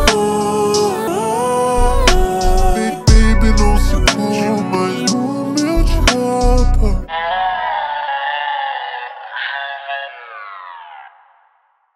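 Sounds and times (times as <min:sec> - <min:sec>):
electronic beat and bass: 0:00.0 - 0:00.8, 0:01.8 - 0:04.7, 0:05.6 - 0:07.0.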